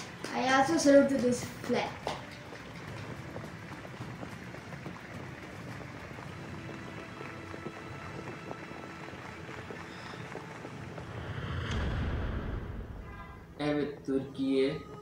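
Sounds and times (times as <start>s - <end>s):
rushing wind-like noise: 10.2s - 13.6s.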